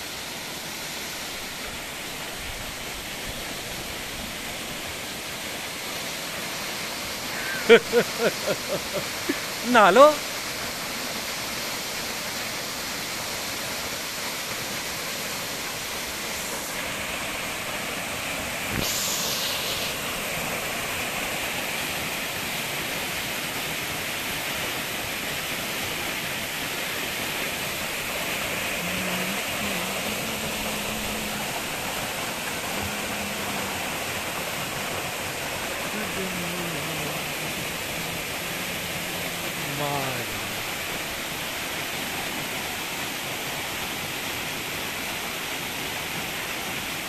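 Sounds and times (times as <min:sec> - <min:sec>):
waterfall rushing: 0:00.0 - 0:47.0.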